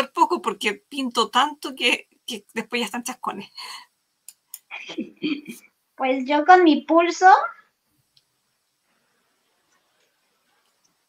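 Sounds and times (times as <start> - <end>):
faint clicks: 8.1 - 8.4.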